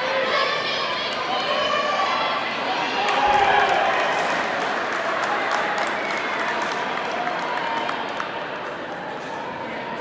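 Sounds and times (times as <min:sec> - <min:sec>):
many voices talking: 0:00.0 - 0:10.0
spectators clapping and cheering: 0:02.7 - 0:10.0.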